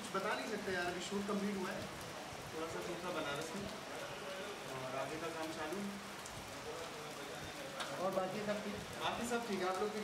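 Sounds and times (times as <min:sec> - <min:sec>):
faint background voices: 0:01.2 - 0:10.0.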